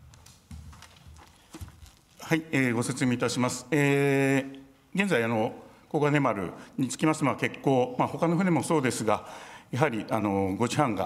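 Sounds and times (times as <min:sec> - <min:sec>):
faint footsteps: 0:00.0 - 0:02.3.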